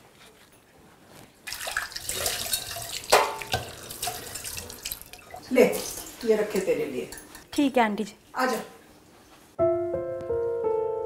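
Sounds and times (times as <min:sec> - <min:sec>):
dishes clinking: 0:02.2 - 0:07.5.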